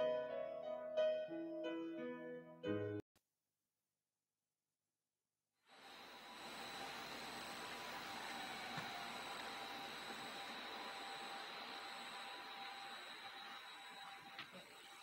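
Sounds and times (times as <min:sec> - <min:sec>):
room tone hiss: 0:05.6 - 0:15.0
thin high whining tones: 0:05.8 - 0:15.0.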